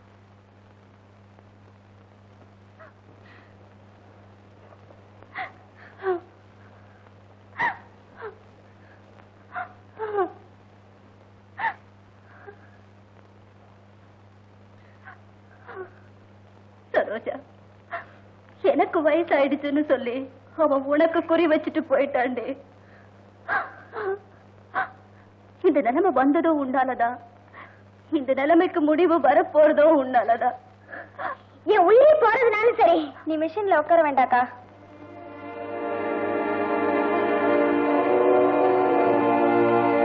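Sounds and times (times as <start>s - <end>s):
steady low hum: 0.0s - 40.0s
woman sobbing: 5.3s - 6.4s, 7.6s - 8.4s, 9.5s - 10.5s, 11.6s - 12.8s, 15.1s - 16.1s, 23.4s - 25.1s, 30.9s - 31.5s.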